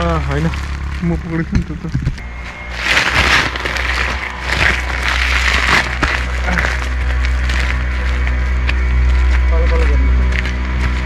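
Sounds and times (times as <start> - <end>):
plastic sack rustling: 0.0 - 9.5
background music: 0.0 - 11.0.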